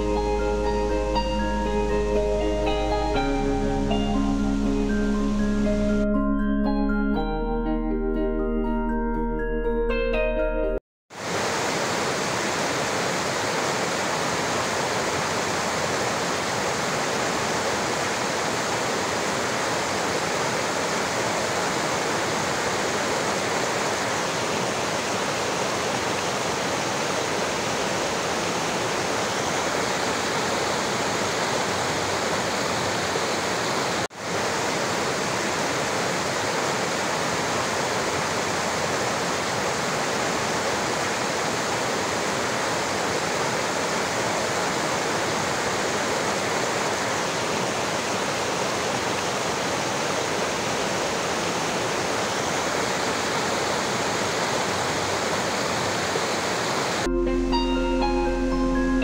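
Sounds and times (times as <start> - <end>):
stream rushing over boulders: 11.1 - 57.1.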